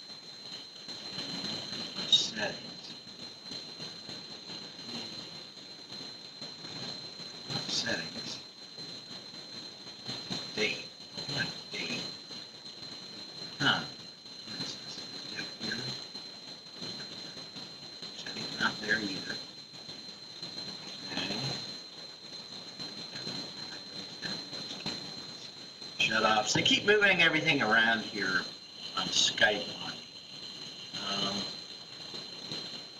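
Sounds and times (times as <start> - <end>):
high-pitched whine: 0.0 - 32.9.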